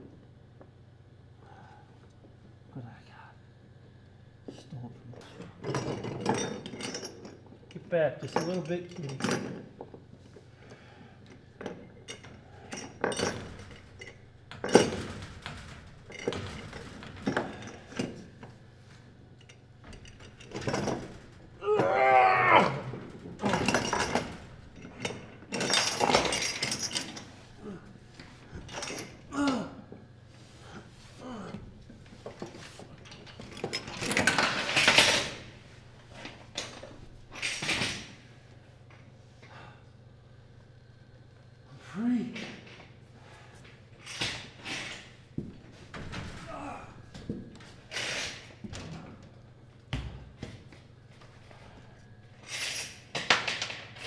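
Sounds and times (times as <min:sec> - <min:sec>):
person grunting: 0:29.3 - 0:29.9.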